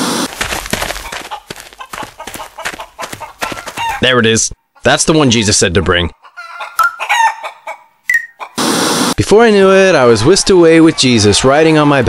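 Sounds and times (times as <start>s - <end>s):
loud burst of noise: 0.0s - 0.3s, 8.6s - 9.2s
cartoon chickens clucking: 0.8s - 5.4s, 6.0s - 8.9s.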